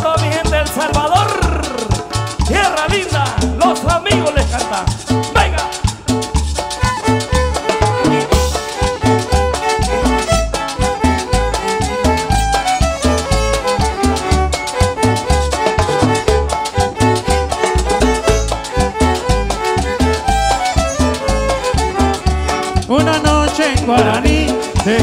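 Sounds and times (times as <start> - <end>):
person singing: 0.0 - 5.8, 11.2 - 13.3, 21.7 - 25.0
latin dance band playing: 0.0 - 25.0.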